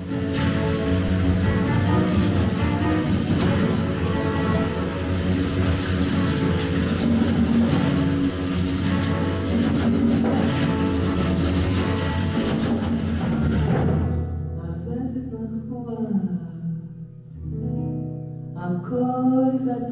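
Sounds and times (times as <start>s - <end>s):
congas played in busy rhythm: 0.0s - 14.2s
acoustic guitar: 0.0s - 19.9s.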